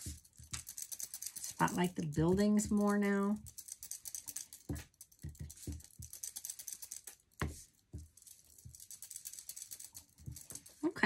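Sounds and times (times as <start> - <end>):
sponge dabbing ink on paper: 0.0 - 11.0.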